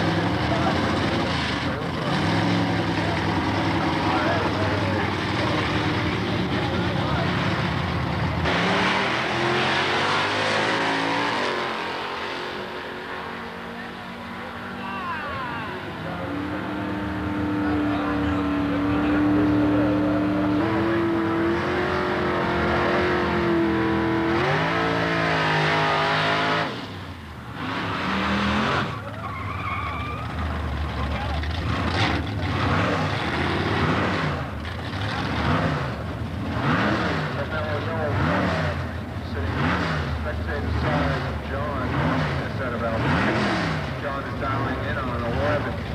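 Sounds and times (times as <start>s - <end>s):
engine at high revs: 0.0s - 29.2s, 30.5s - 45.9s
tyre squeal: 28.6s - 30.6s.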